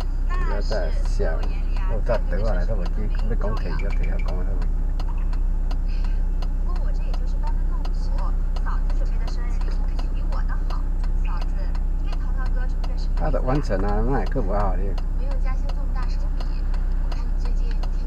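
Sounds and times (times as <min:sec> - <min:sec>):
car engine idling: 0:00.0 - 0:18.0
regular ticking: 0:00.0 - 0:18.0
quiet speech: 0:00.3 - 0:05.4, 0:06.7 - 0:18.0.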